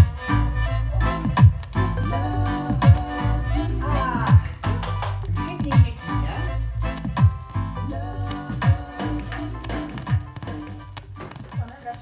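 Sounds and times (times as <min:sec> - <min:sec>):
reggae music from vinyl record: 0:00.0 - 0:12.0.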